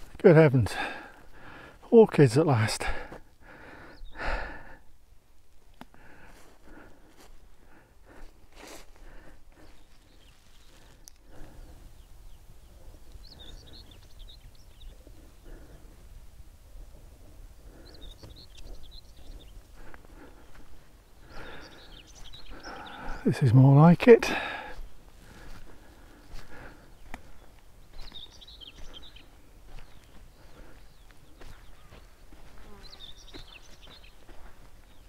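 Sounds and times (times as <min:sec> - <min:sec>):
soft footsteps: 0:24.7 - 0:35.0.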